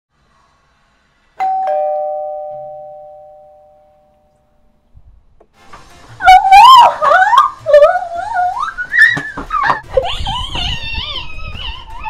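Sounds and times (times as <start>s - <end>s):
doorbell ding-dong chime: 1.4s - 4.5s.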